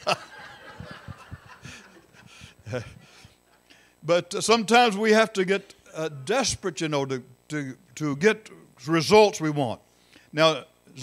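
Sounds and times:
man chuckling quietly: 0.0 - 3.2.

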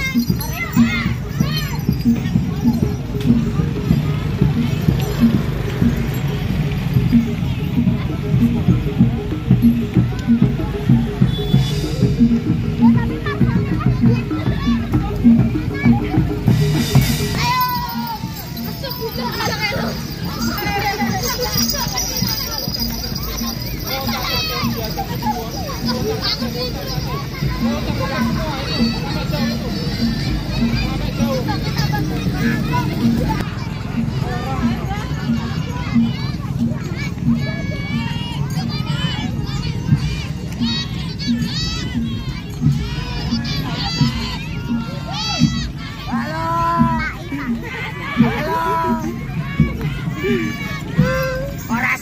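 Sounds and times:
children shouting: 0.0 - 52.0
crowd noise: 0.0 - 52.0.

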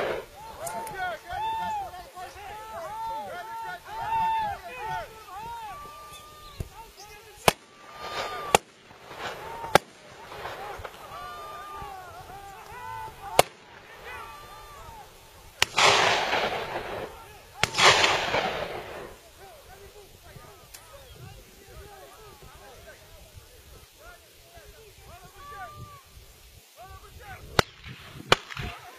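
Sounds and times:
gunshots: 0.0 - 0.3, 7.4 - 11.9, 13.1 - 14.5, 15.6 - 19.2, 27.6 - 28.9
rolling echo of gunshots: 0.0 - 0.3, 7.4 - 11.4, 13.3 - 14.1, 15.6 - 19.2, 27.6 - 28.8.

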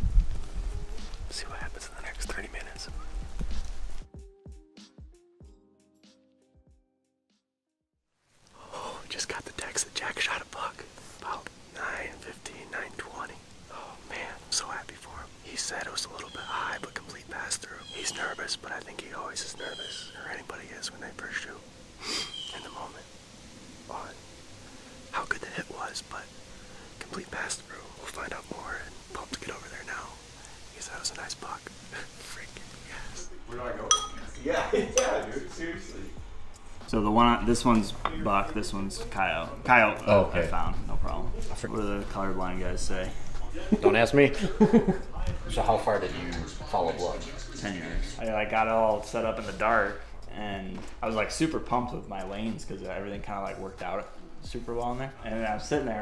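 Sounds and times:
man whispering: 1.2 - 3.2, 8.4 - 23.2, 23.8 - 24.3, 25.1 - 43.6, 45.1 - 56.0.

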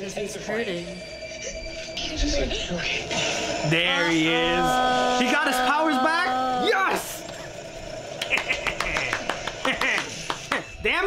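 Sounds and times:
person clapping rapidly: 8.2 - 10.7.

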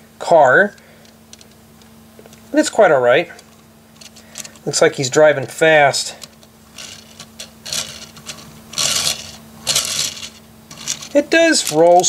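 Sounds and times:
toy car wheels rolling: 6.8 - 12.0.

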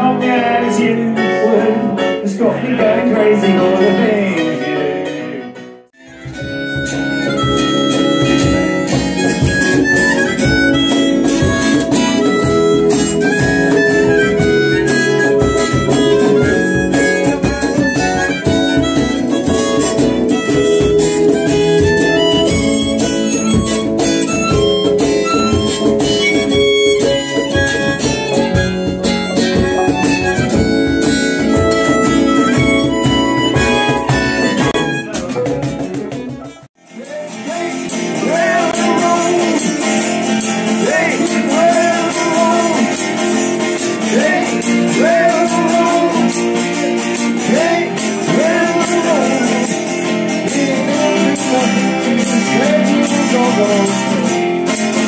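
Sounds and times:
electric keyboard chords: 0.0 - 55.0
harmonica solo: 6.0 - 35.4.

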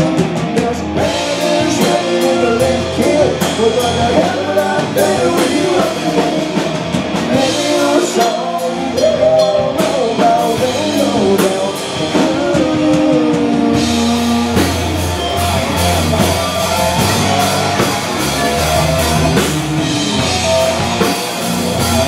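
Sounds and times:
bass guitar: 0.0 - 22.0
drum kit: 0.0 - 22.0
electric guitars: 0.0 - 22.0
singer's vocals: 0.0 - 22.0.

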